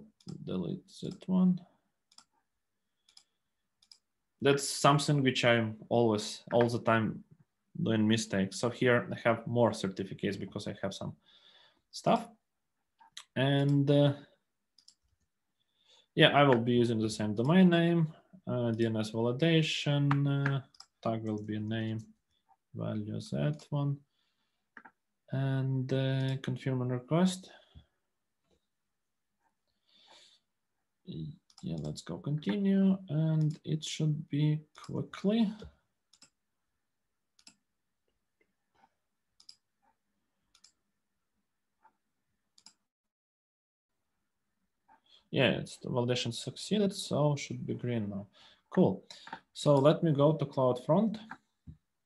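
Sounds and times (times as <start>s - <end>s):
computer mouse clicks: 2.1s - 2.4s, 3.0s - 4.1s, 14.8s - 15.1s, 36.1s - 36.4s, 37.4s - 37.6s, 38.7s - 40.8s, 42.6s - 42.8s
man saying uh: 22.8s - 24.0s.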